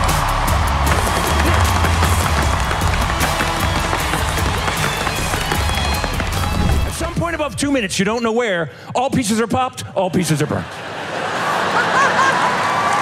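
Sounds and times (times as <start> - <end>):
backing music with steady bass: 0.0 - 6.9
tap shoes on wooden board: 0.9 - 6.9.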